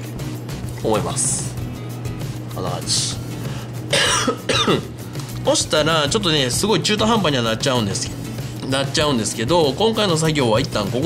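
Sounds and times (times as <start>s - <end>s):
man coughing: 3.8s - 5.0s
throat clearing: 3.9s - 5.0s.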